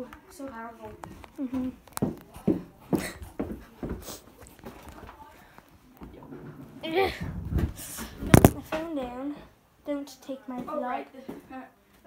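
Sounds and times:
phone handling noise: 8.3 - 8.6.

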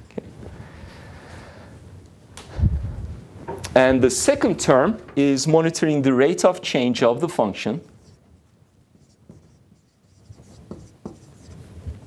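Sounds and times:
marker squeaking on whiteboard: 7.8 - 11.7.

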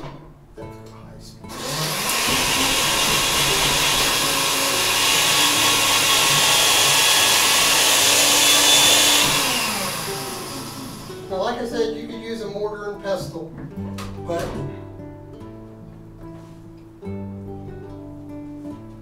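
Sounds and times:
small electric motor running: 1.5 - 11.3.

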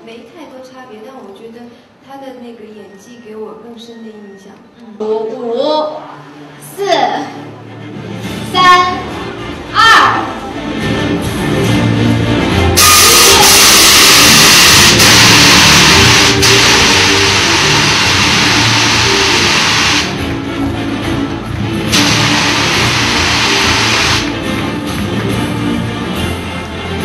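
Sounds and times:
background music: 4.2 - 27.0
gas jets blasting with hiss: 12.8 - 20.2, 21.9 - 24.3.

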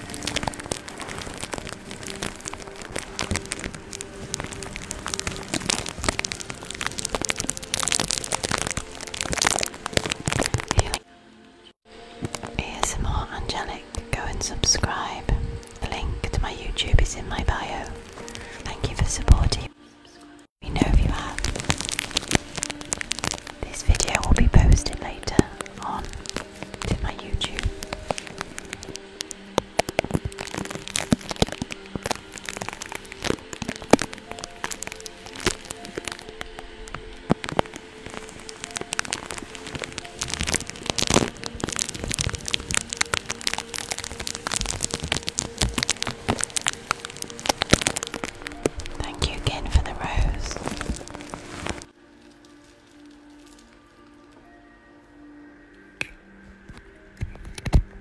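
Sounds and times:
fingertips tapping microphone: 0.0 - 11.0, 20.6 - 51.9
soft whispering: 0.0 - 11.0, 12.3 - 51.9
tape crackling on microphone: 0.0 - 54.6, 55.7 - 58.0.

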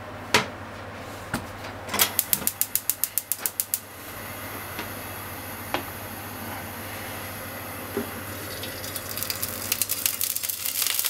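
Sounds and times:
gas stove igniter clicking: 2.0 - 3.8
gas burner hissing: 2.1 - 11.0.

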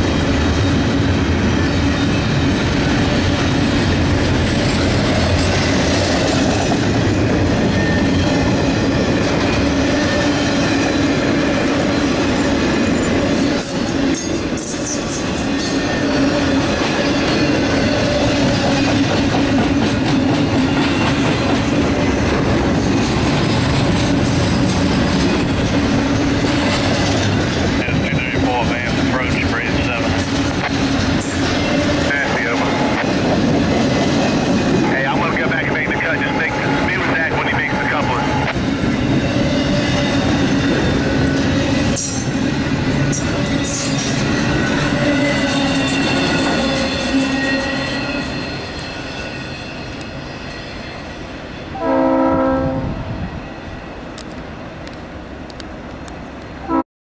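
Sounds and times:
train wheels rolling on rail: 0.0 - 56.8.

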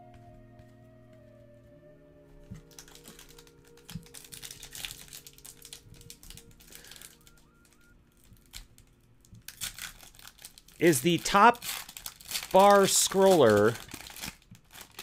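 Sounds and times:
faint background music: 0.0 - 15.0
foil wrappers crinkling: 2.5 - 15.0.

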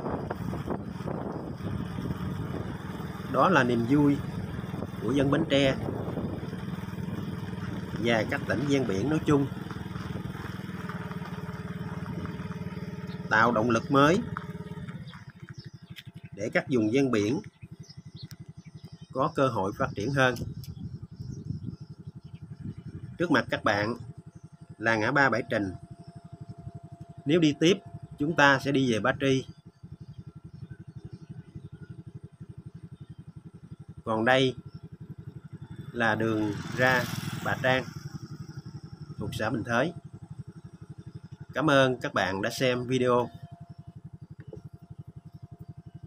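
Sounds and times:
small motorcycle engine running: 0.0 - 46.0.

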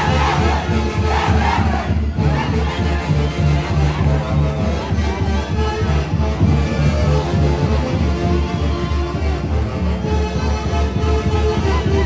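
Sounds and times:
festival music with bass drum: 0.0 - 12.0.

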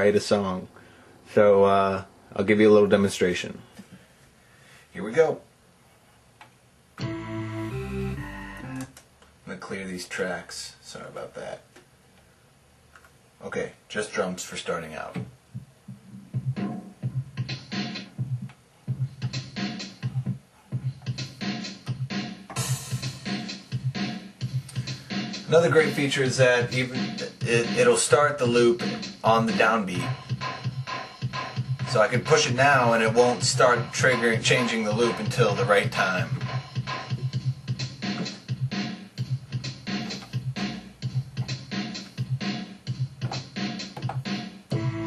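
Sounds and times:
electronic drum beat: 7.0 - 8.9, 15.5 - 45.0.

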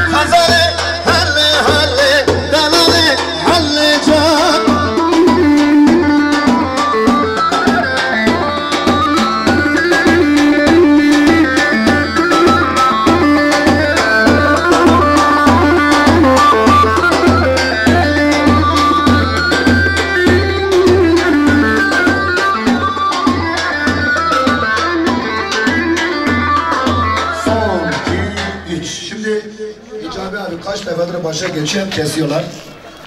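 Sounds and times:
steady drum beat: 0.0 - 29.2
band playing dance music: 0.0 - 32.7.

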